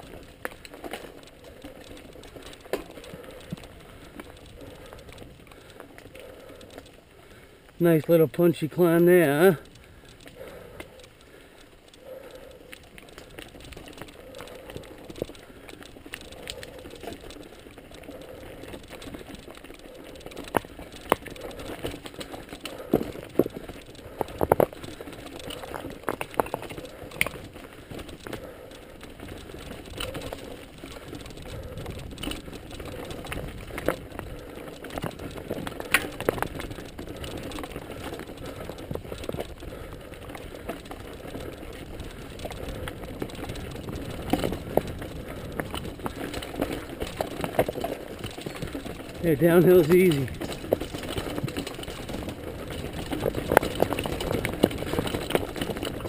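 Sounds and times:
bike rattling: 0:00.0 - 0:56.0
bike tyres over stones and dirt: 0:00.0 - 0:56.0
wheels knocking on rocks: 0:00.0 - 0:56.0.

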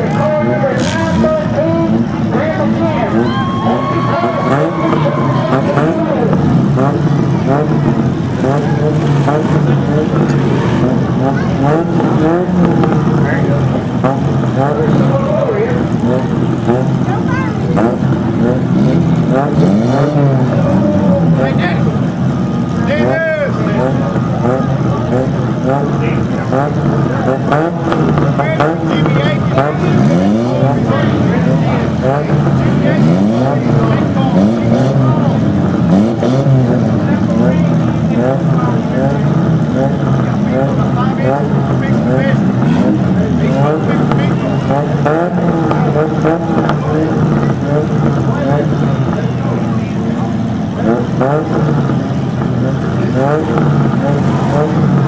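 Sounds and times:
car engines idling and revving: 0:00.0 - 0:55.0.

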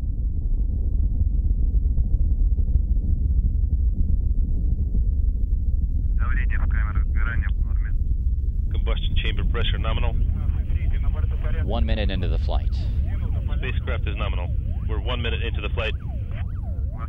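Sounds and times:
rocket engines rumbling: 0:00.0 - 0:17.0
radio voice: 0:06.2 - 0:08.0, 0:08.7 - 0:17.0.

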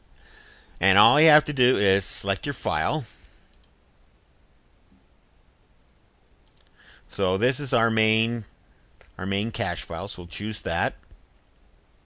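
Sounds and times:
faint hiss: 0:00.0 - 0:12.0
faint clicks: 0:03.5 - 0:03.8, 0:06.4 - 0:06.8.

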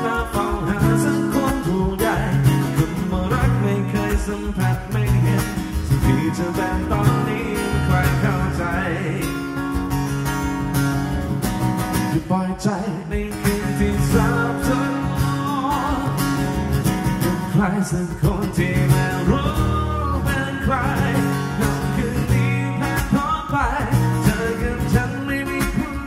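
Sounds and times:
man singing: 0:00.0 - 0:09.6, 0:12.1 - 0:16.6, 0:17.2 - 0:26.0
acoustic guitar strumming chords: 0:00.0 - 0:26.0.

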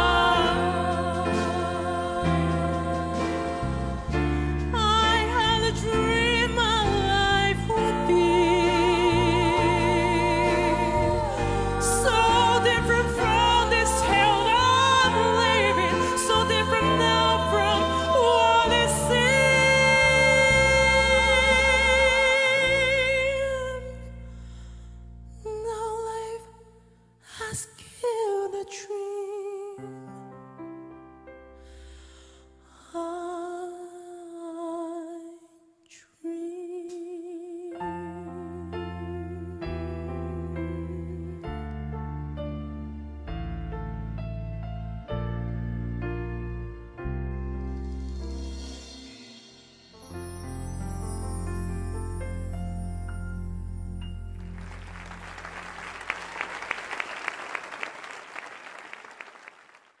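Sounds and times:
piano chord: 0:00.0 - 0:23.5, 0:38.0 - 0:56.4
low chord: 0:39.8 - 0:56.3
audience applauding: 0:54.4 - 1:00.0.

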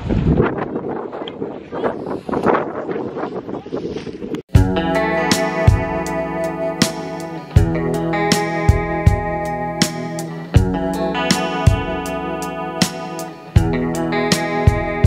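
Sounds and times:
wind buffeting microphone: 0:00.0 - 0:04.5
music with guitar and drums: 0:04.5 - 0:15.0.

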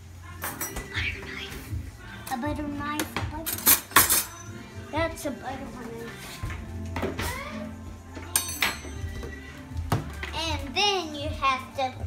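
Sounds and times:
background music: 0:00.0 - 0:12.0
kitchen items knocking and clinking: 0:08.2 - 0:10.4.

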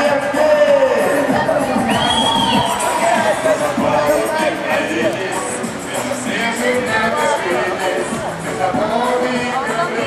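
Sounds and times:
crowd cheering and shouting: 0:00.0 - 0:05.5
music: 0:00.0 - 0:10.0.

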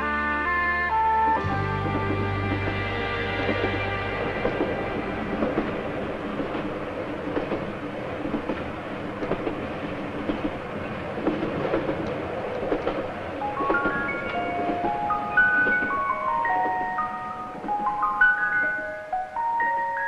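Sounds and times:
train carriage rumble: 0:00.0 - 0:20.0.

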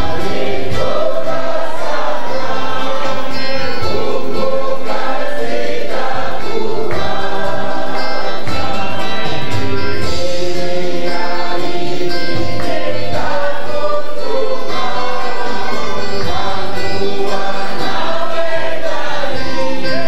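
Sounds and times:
gospel choir singing: 0:00.0 - 0:20.0.

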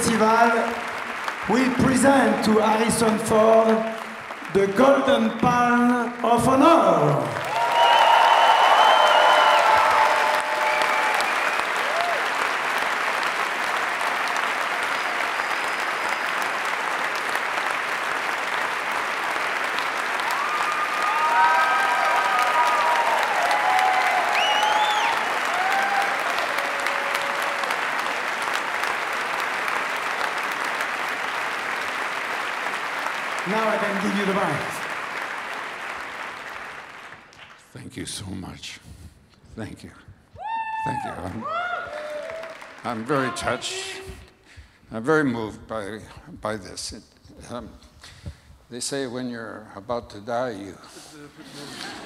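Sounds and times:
audience applauding: 0:00.0 - 0:37.6, 0:40.5 - 0:44.6
audience cheering: 0:06.6 - 0:37.2, 0:40.4 - 0:44.2
whistle from audience: 0:07.6 - 0:10.0, 0:14.8 - 0:16.5, 0:24.0 - 0:25.3.

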